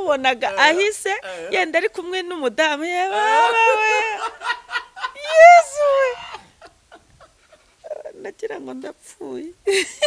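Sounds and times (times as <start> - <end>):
woman speaking: 0.0 - 4.3, 5.2 - 6.2, 7.8 - 9.6
woman laughing: 0.4 - 1.8, 3.0 - 8.2, 9.7 - 10.0.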